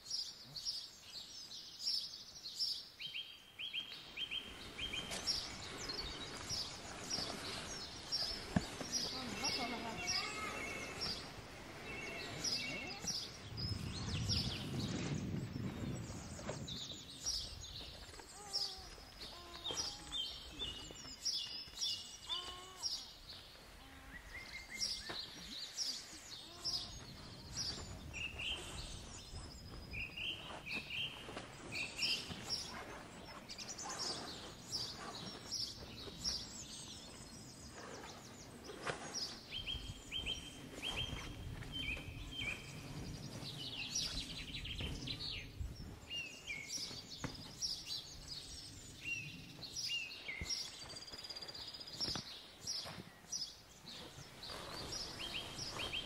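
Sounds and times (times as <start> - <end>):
birds singing and chirping: 0.0 - 56.0
camping gear rustling and knocking: 5.0 - 9.6.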